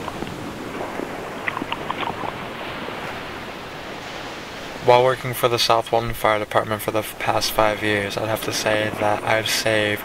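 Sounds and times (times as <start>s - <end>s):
faint water ticks: 0.0s - 4.8s, 5.8s - 10.0s
surf washing: 0.0s - 10.0s.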